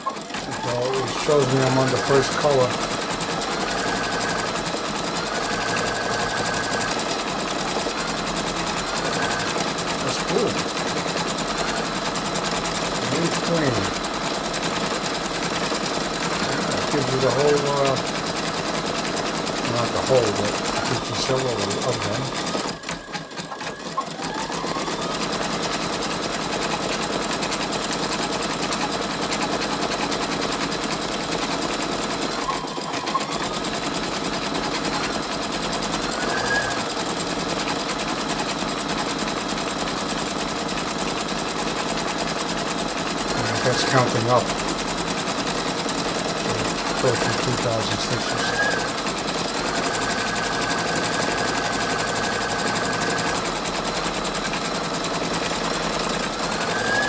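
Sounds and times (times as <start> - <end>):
embroidery machine stitching: 0.0 - 57.0.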